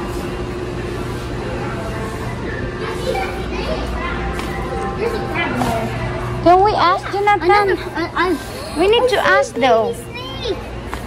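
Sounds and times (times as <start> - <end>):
steady low hum: 0.0 - 11.0
children's voices chattering: 0.3 - 11.0.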